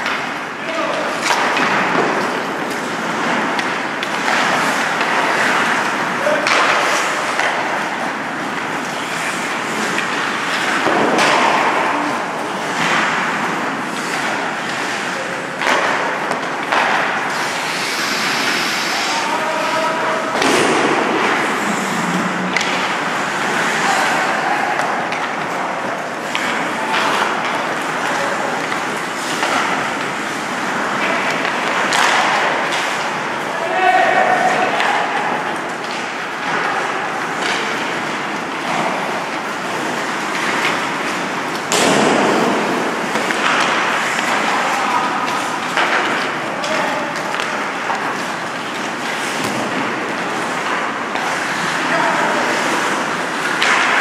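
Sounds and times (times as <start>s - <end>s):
skates scraping ice: 0.0s - 54.0s
sticks and puck clacking: 0.0s - 54.0s
players shouting: 22.6s - 29.6s, 33.4s - 35.8s.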